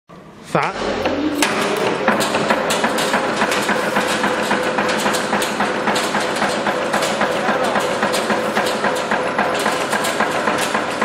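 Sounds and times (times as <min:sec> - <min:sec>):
machine hum: 0:00.1 - 0:11.0
nail making machine clattering: 0:01.4 - 0:11.0.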